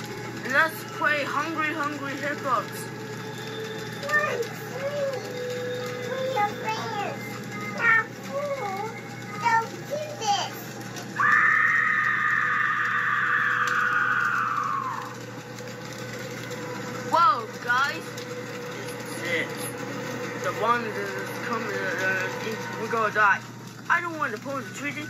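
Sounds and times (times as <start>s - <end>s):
children talking and calling out: 3.7s - 15.2s.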